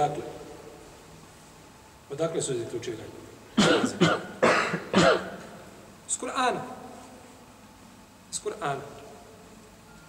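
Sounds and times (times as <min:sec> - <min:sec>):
man coughing: 0:03.5 - 0:05.5.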